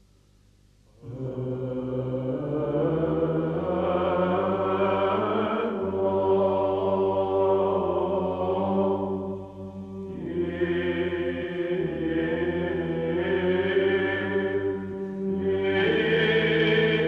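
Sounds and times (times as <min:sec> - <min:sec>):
low drone: 0:00.9 - 0:17.0
slow vocal chanting: 0:00.9 - 0:17.0.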